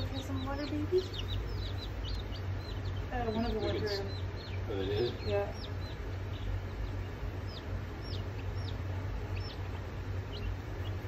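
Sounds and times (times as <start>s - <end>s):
chicks peeping: 0.0s - 11.0s
steady low hum: 0.0s - 11.0s.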